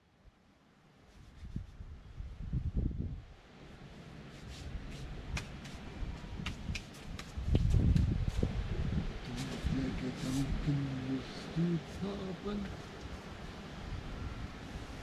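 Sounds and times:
wind buffeting microphone: 1.4s - 3.4s, 4.7s - 15.0s
person speaking: 9.2s - 12.8s.

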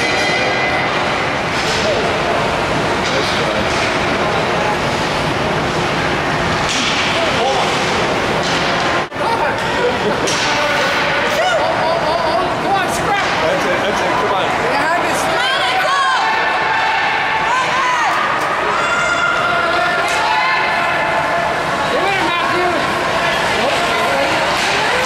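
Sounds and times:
spectators shouting: 9.4s - 25.0s.

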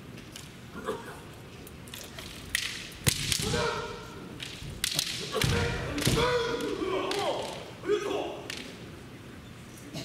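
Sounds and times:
bamboo swords cracking: 1.9s - 3.8s, 4.4s - 7.7s
people shouting: 3.3s - 4.3s, 5.2s - 8.4s.

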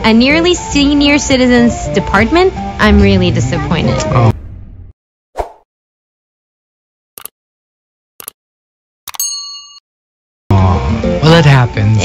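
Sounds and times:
notification bell ding: 9.1s - 9.8s.

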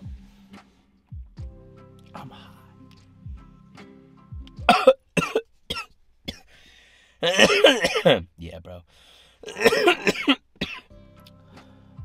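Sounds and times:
background music with held notes: 0.0s - 8.1s, 8.9s - 12.0s
man coughing: 4.7s - 6.5s, 7.2s - 8.3s, 9.4s - 10.8s.

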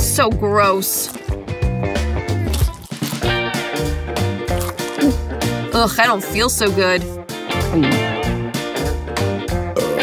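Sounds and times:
background music with plucked guitar: 0.0s - 10.0s.

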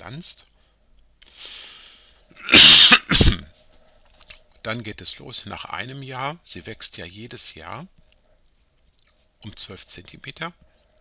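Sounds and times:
person sneezing: 2.4s - 3.5s.

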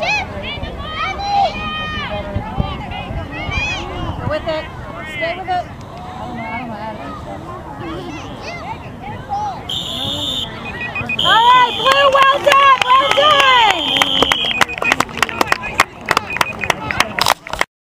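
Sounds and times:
people shouting: 7.8s - 14.4s
referee's whistle blasts: 9.7s - 15.0s.

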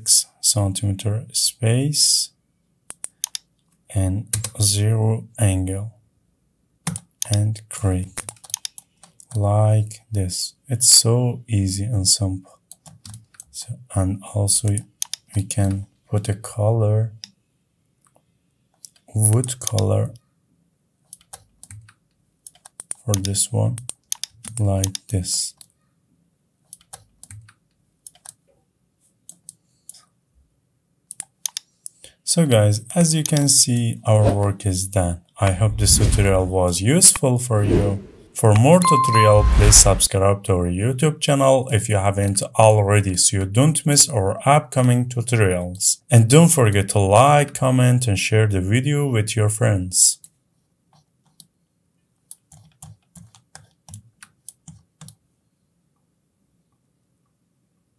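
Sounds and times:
mouse and keyboard clicking: 2.9s - 3.5s, 8.2s - 9.4s, 21.1s - 25.1s, 26.7s - 28.4s, 31.1s - 31.7s, 52.3s - 55.2s
mouse button clicks: 38.8s - 40.0s.

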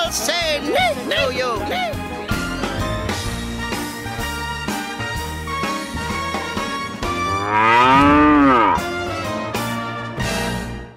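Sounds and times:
advert theme music: 0.0s - 10.9s
cow mooing: 7.0s - 9.1s.

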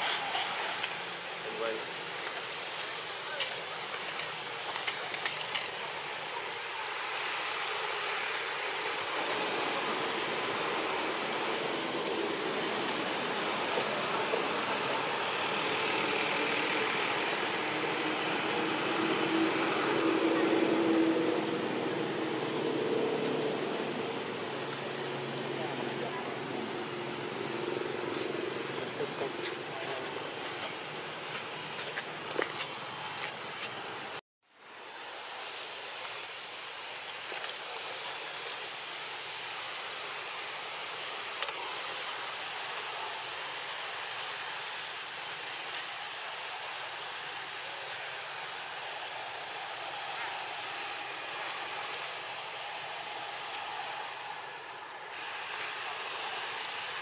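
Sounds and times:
outdoor background noise: 0.0s - 57.0s.

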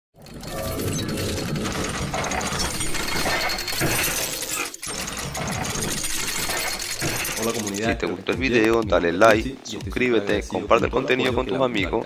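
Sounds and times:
rapid clicking and ratcheting: 0.2s - 8.9s.

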